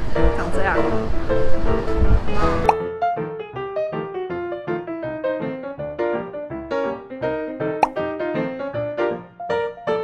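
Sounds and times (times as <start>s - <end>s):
bouncy keyboard music: 0.2s - 10.0s.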